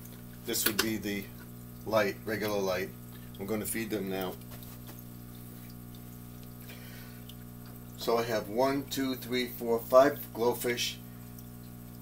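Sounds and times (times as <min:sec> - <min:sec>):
aquarium aeration hum: 0:00.0 - 0:12.0
water bubbling and trickling: 0:00.0 - 0:12.0.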